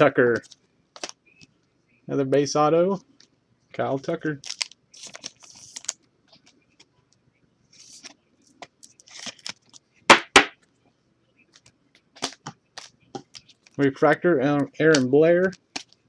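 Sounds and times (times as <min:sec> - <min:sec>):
plastic sleeve rustling: 0:04.3 - 0:06.6, 0:07.7 - 0:09.8.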